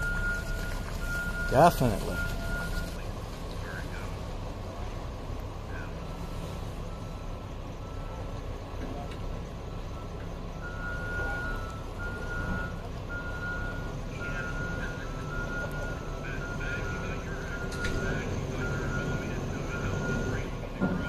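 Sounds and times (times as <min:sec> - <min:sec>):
backup alarm beeping: 0:00.0 - 0:03.0, 0:09.8 - 0:21.0
low engine rumble: 0:00.0 - 0:21.0.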